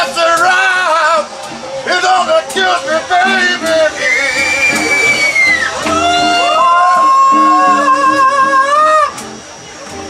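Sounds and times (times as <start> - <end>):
electric blues band playing: 0.0 - 10.0
lead electric guitar bending notes: 1.4 - 9.4.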